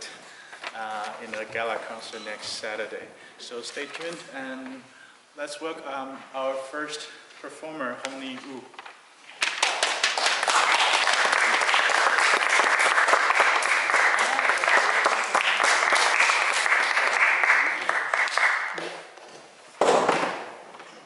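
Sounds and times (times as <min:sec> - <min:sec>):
audience applauding: 0:09.5 - 0:18.9.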